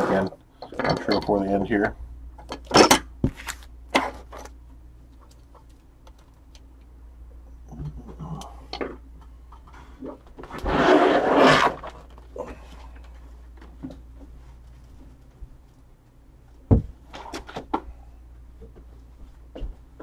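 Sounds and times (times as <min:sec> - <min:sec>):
steady low hum: 0:00.0 - 0:20.0
scraping rasp: 0:10.5 - 0:12.0.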